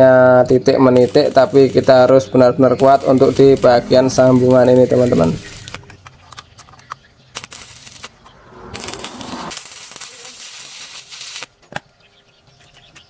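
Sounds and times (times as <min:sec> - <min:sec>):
steady rasping noise: 0:00.5 - 0:06.0.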